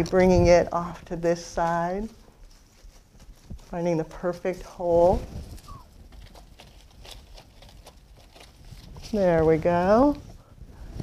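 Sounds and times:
stem rustling through leaves: 0.0s - 11.0s.

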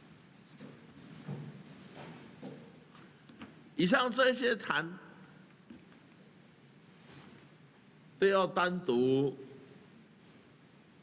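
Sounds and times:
marker scratching on paper: 0.2s - 2.4s.

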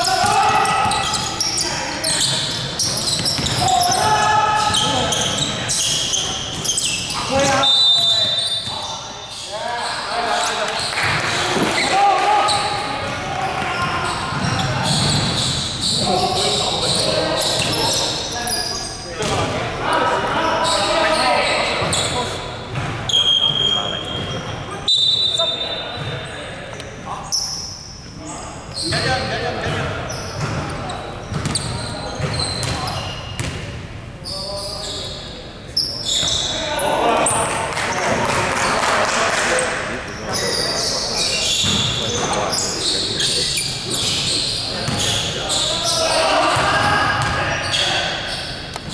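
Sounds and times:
players calling out: 0.0s - 26.4s, 34.2s - 48.9s
basketball bouncing on wood court: 2.9s - 4.1s, 14.3s - 15.6s, 30.4s - 33.6s, 46.6s - 47.4s.

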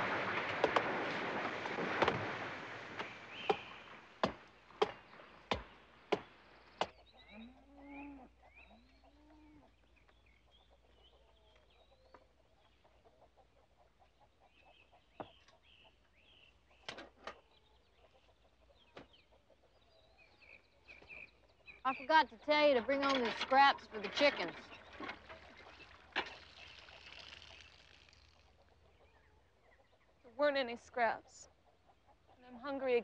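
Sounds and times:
axes chopping tree trunk: 1.8s - 2.3s, 3.0s - 7.0s
birds chirping: 2.2s - 33.0s.

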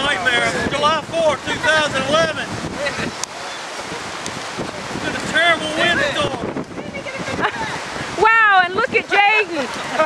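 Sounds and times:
wind blowing over microphone: 0.0s - 10.0s.

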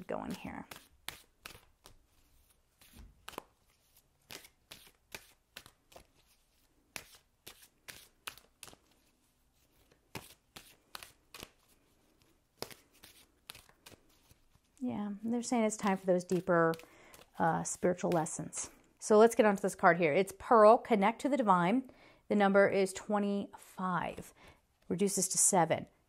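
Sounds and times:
cards being shuffled: 0.1s - 18.8s.

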